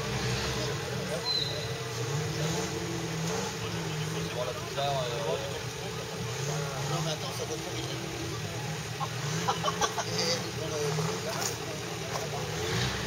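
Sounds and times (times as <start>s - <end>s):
people talking: 0.0s - 13.0s
vehicle engine running at low revs: 0.0s - 13.0s.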